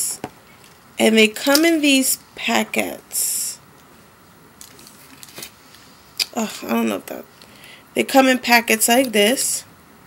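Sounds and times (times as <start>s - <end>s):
plastic packets rustling: 4.6s - 5.6s.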